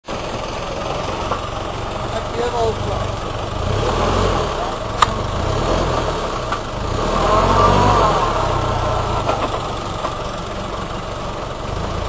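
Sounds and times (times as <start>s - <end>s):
suv engine running at low revs: 0.0s - 12.0s.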